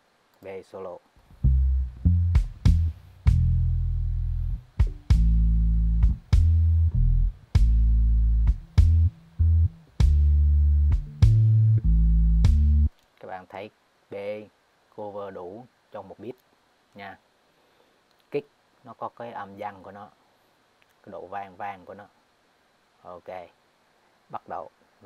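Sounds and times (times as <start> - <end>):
sustained low bass notes: 1.3 - 12.9
light kick drum: 1.4 - 3.8, 4.5 - 9.2, 10.0 - 12.9.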